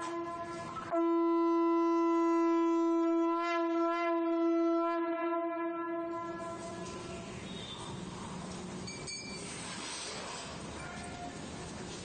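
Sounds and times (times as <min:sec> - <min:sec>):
conch shell blown: 0:00.0 - 0:07.2
background noise: 0:06.0 - 0:12.0.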